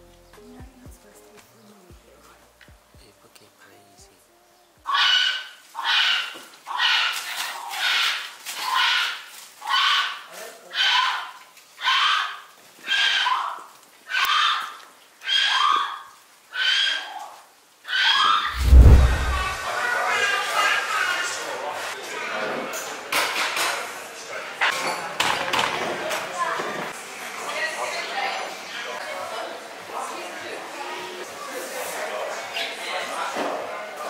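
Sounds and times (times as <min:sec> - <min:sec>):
animal calling: 0:04.6 - 0:18.5
loud low thump: 0:18.5 - 0:19.6.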